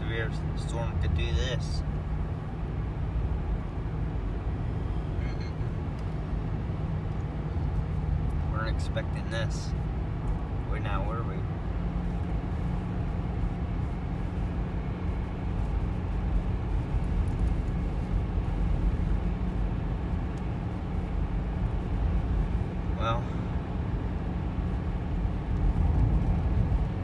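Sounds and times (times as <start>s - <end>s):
car interior engine and tyre rumble: 0.0s - 27.0s.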